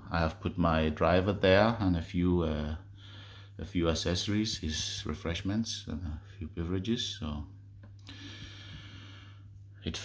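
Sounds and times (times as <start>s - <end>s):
man speaking: 0.0s - 2.9s, 3.6s - 7.6s
steady low hum: 0.0s - 10.0s
soft breath: 2.9s - 3.6s, 8.0s - 9.8s.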